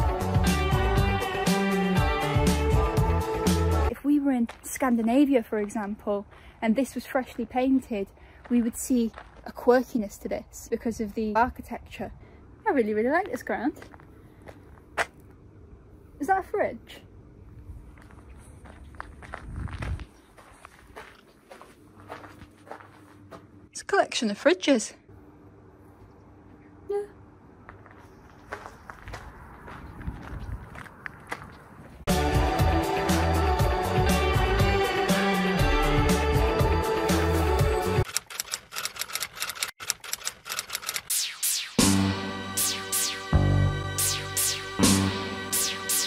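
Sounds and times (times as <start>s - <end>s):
music with deep bass: 0.0s - 3.9s, 32.1s - 38.0s, 41.7s - 46.0s
footsteps on gravel: 3.9s - 10.1s, 17.8s - 23.6s, 27.7s - 32.0s
high sweeping sounds: 41.1s - 46.0s.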